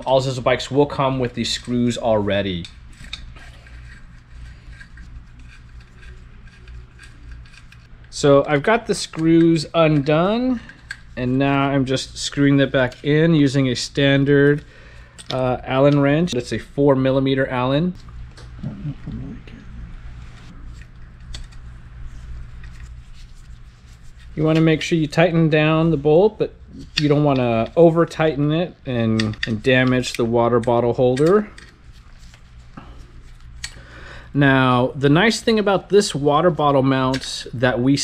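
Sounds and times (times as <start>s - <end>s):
low steady hum: 0.0s - 38.0s.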